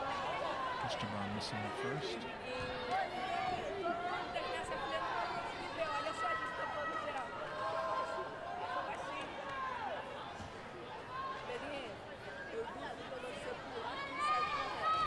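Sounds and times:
crowd chattering and calling out: 0.0s - 15.0s.

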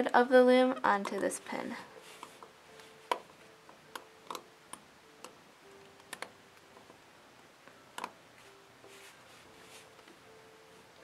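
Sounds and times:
crochet hook clicking on plastic pins: 1.0s - 1.3s, 3.9s - 5.4s.

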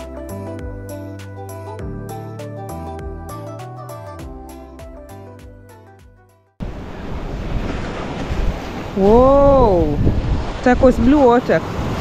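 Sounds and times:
background music: 0.0s - 6.5s
sea surf: 6.6s - 12.0s
wind noise on microphone: 6.6s - 12.0s
person calling out: 9.0s - 10.0s.

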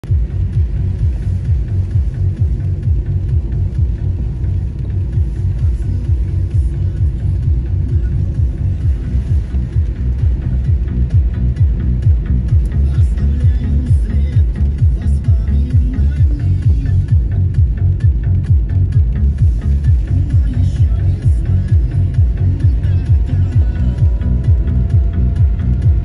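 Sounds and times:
electronic music with fast bass beat: 0.0s - 26.0s.

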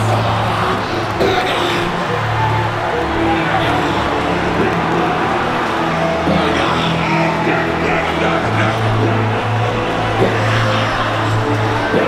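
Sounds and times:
congregation singing and shouting: 0.0s - 12.0s
loud worship music: 0.0s - 12.0s.

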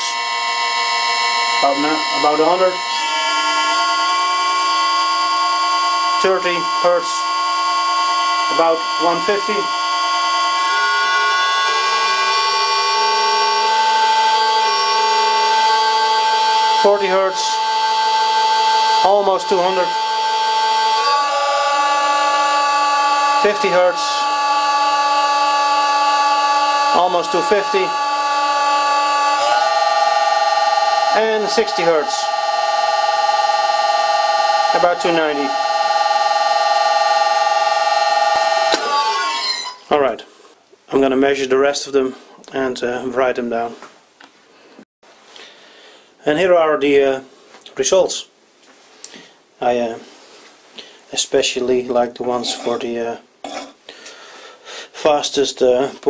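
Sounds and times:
lathe motor whining: 0.0s - 40.0s.

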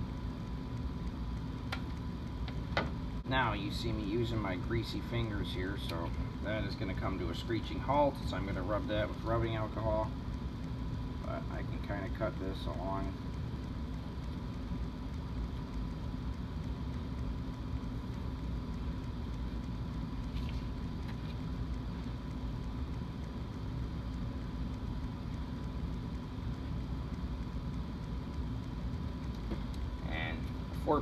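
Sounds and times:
low background hum: 0.0s - 31.0s
thin steady whine: 0.0s - 31.0s.

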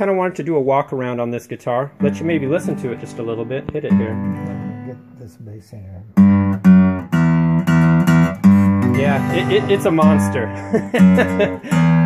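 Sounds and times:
acoustic guitar strummed and picked: 0.0s - 12.0s.

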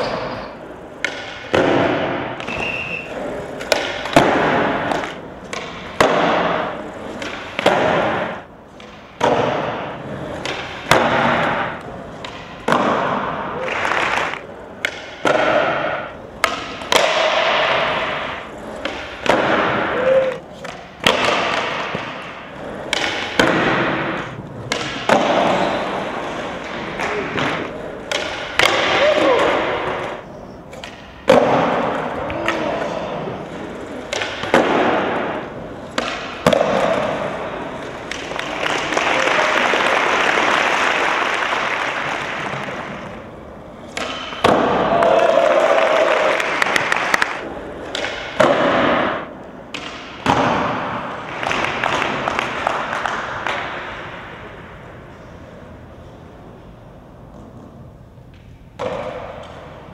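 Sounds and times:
skateboard wheels rolling on concrete: 0.0s - 32.2s
skateboard clattering on floor: 0.0s - 39.4s, 43.8s - 54.2s
skateboard slapping on landing: 1.0s - 54.6s, 58.3s - 59.9s.

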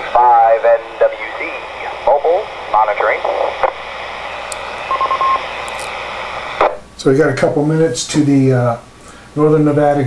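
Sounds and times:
radio static hiss: 0.0s - 6.9s.

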